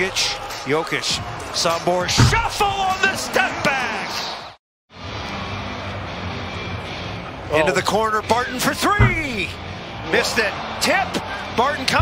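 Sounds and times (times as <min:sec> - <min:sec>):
arena crowd rumble: 0:05.2 - 0:12.0.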